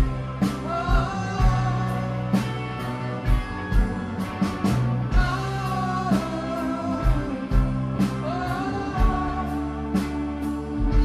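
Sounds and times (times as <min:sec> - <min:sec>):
rock band playing live: 0:00.0 - 0:11.0
person singing long notes: 0:00.5 - 0:11.0.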